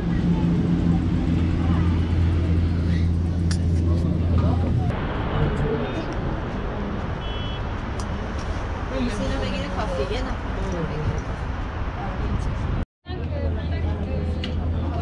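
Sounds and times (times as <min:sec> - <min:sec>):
outdoor city background: 0:00.0 - 0:15.0.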